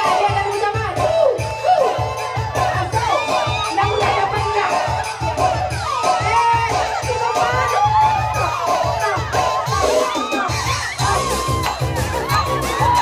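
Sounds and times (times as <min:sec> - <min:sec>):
crowd shouting and cheering: 0:00.0 - 0:13.0
music with steady beat: 0:00.0 - 0:13.0.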